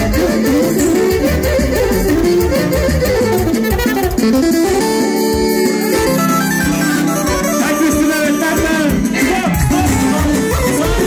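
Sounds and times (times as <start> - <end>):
folk band with keyboard and violin: 0.0 - 11.0.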